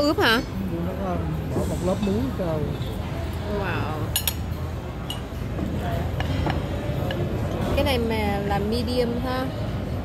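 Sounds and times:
dining room hum: 0:00.0 - 0:10.0.

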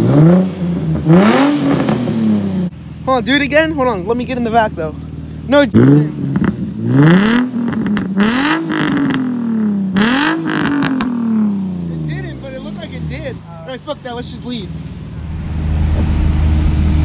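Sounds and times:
car engine revving: 0:00.0 - 0:17.0.

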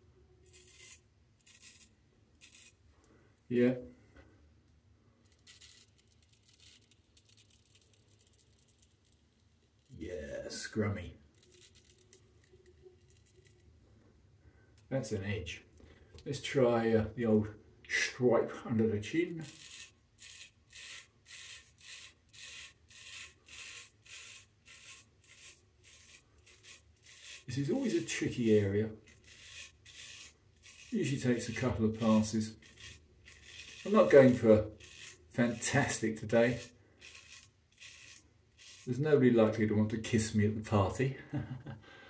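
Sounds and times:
razor scraping stubble: 0:00.4 - 0:02.8, 0:05.2 - 0:13.8, 0:18.0 - 0:40.4.

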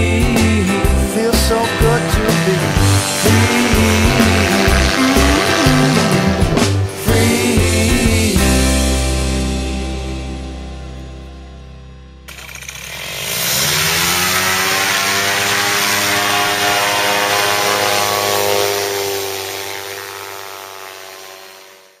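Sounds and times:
small aircraft engine revving: 0:00.0 - 0:08.3, 0:12.3 - 0:22.0.

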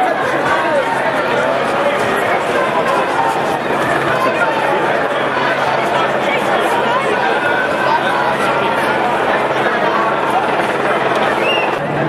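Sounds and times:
crowd babble: 0:00.0 - 0:12.0.

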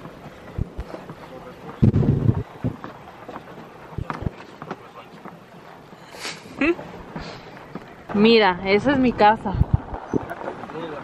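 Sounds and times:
vehicle rolling over dirt track: 0:06.9 - 0:11.0.

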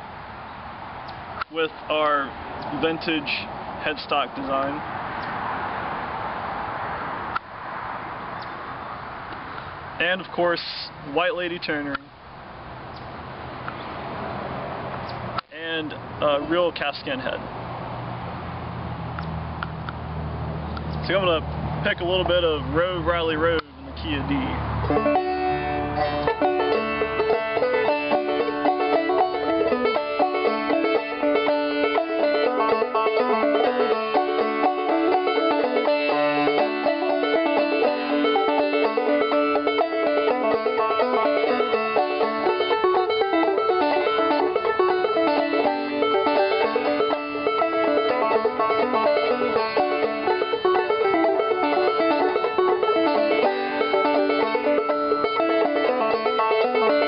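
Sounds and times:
banjo playing old-time tune: 0:21.0 - 0:57.0.

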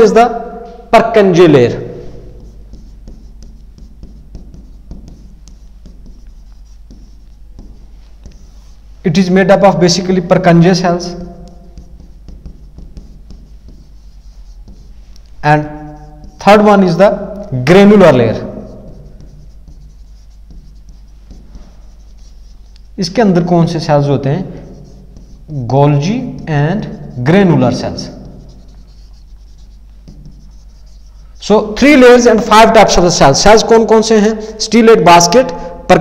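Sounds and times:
stylus tapping on touchscreen: 0:02.1 - 0:08.8, 0:11.4 - 0:16.5, 0:18.8 - 0:22.9, 0:24.8 - 0:25.6, 0:27.7 - 0:31.2.

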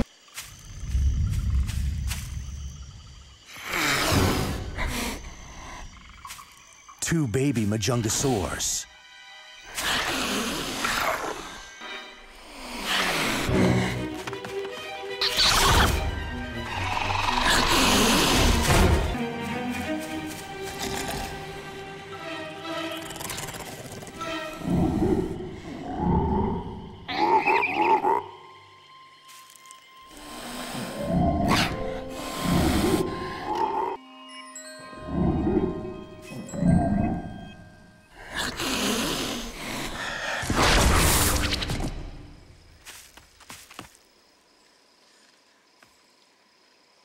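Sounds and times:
background music: 0:07.0 - 0:40.1
rough animal-like cry: 0:22.9 - 0:28.4.

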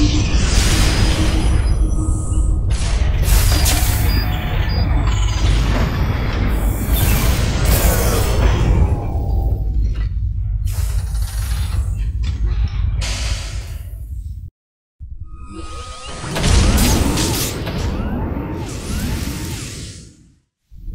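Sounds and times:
machinery booms and clanks: 0:00.0 - 0:14.5, 0:16.1 - 0:19.6
deep rumble: 0:05.0 - 0:14.5.

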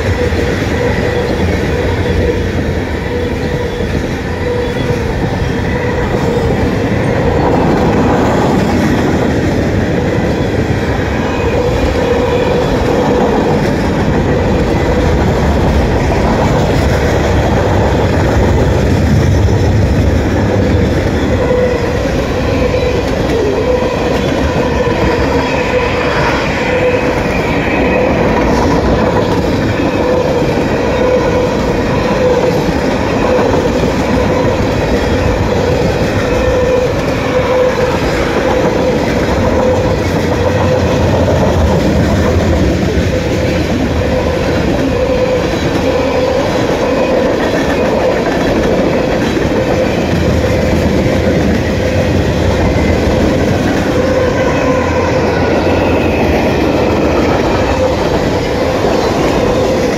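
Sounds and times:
freight train wheels clattering: 0:00.0 - 0:59.9.

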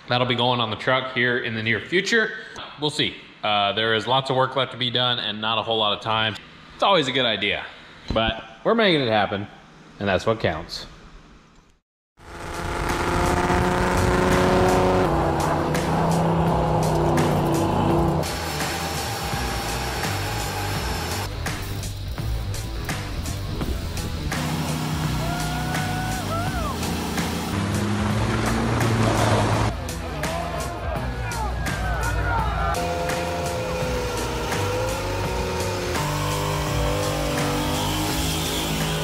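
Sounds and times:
car engines at high revs: 0:12.2 - 0:22.1, 0:22.8 - 0:29.9, 0:32.8 - 0:39.0.

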